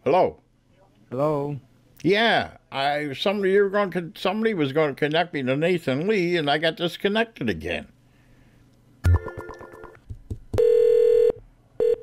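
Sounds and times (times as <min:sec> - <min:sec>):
buzzy telephone ring tone: 0:09.0 - 0:10.0, 0:10.6 - 0:12.0.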